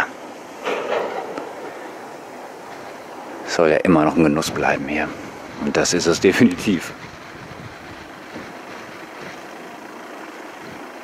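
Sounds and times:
bicycle tyres rolling on road: 0.2 - 11.0.

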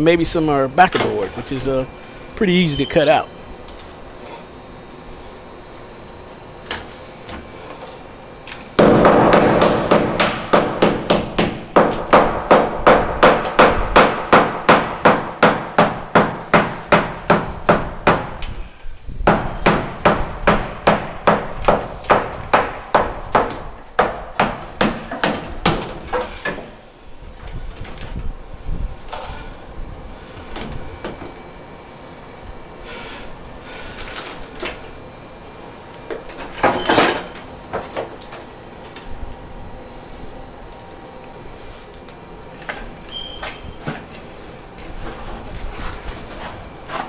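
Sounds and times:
hammer striking chisel: 8.8 - 18.3, 19.3 - 26.6.

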